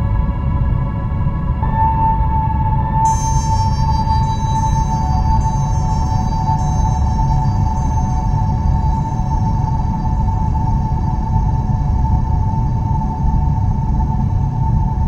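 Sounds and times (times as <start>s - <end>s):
ambient instrumental music: 1.5s - 11.6s.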